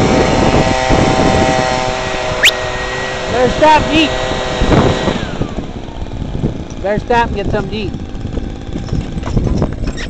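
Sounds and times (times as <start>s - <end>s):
blower gas engine running: 0.0s - 9.9s.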